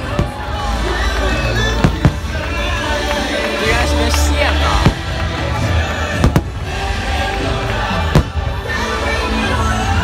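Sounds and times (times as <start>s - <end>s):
fireworks bangs: 0.0s - 8.8s
show music: 0.0s - 10.0s.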